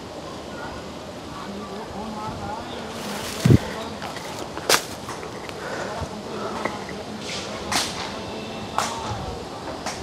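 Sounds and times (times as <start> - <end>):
steady outdoor hiss: 0.0 - 10.0
undergrowth swishing past: 2.8 - 5.0.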